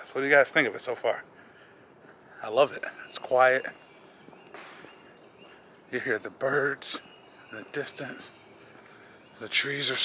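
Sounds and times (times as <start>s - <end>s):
distant birds calling: 0.0s - 10.0s.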